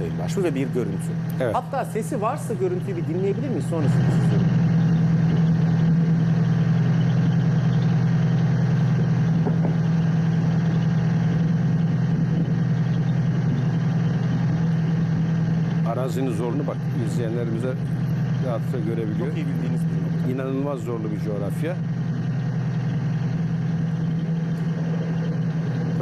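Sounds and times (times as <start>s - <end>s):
engine running steadily: 0.0s - 26.0s.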